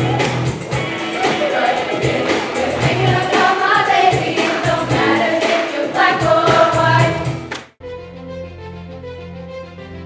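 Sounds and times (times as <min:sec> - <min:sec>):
band with bass beat: 0:00.0 - 0:05.2
choir singing pop song: 0:00.8 - 0:07.5.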